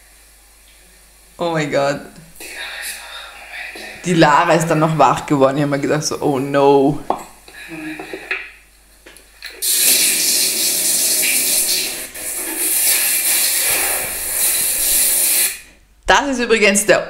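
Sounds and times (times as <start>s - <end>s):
tap water rushing into bathtub: 9.4s - 15.8s.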